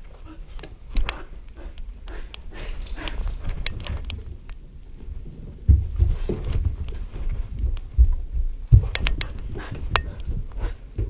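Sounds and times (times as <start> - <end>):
dog footfalls: 5.6 - 11.0.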